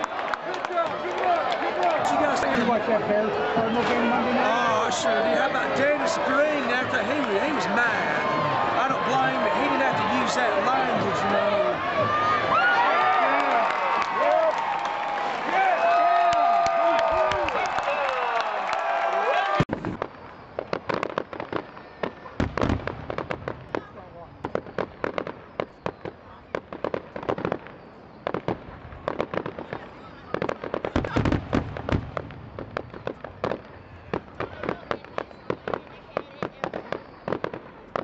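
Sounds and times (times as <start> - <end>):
fireworks popping and crackling: 0.1 - 12.1, 19.6 - 38.0
firework booms: 19.6 - 38.0.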